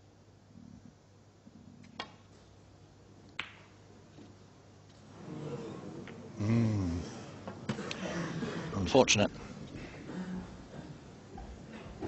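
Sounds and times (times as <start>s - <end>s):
snooker balls clicking together: 1.8s - 2.4s, 3.2s - 5.0s
cue striking snooker ball: 3.4s - 3.7s.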